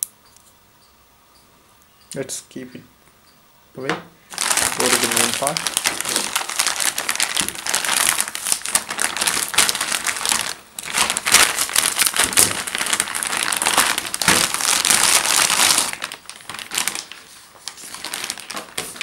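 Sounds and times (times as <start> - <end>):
plastic packaging and bubble wrap crinkling: 4.3 - 19.0.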